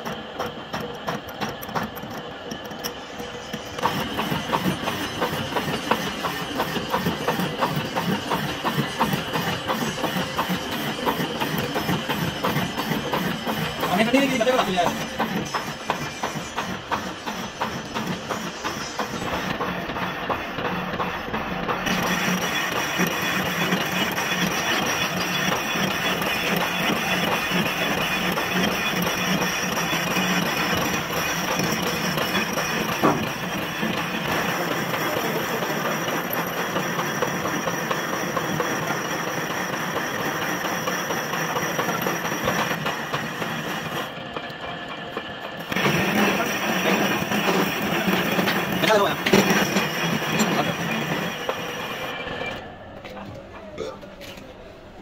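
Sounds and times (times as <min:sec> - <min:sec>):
lathe spindle and gearing running: 0:00.0 - 0:55.0.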